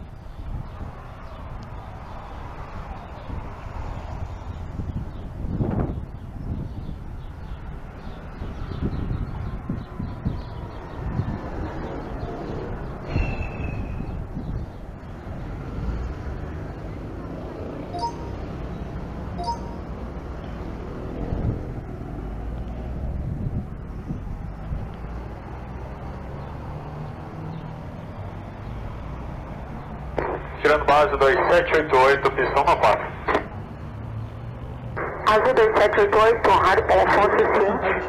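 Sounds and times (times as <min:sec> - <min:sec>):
short high chirp: 0:18.0 - 0:18.5, 0:19.4 - 0:20.0
indistinct voices: 0:30.2 - 0:33.6.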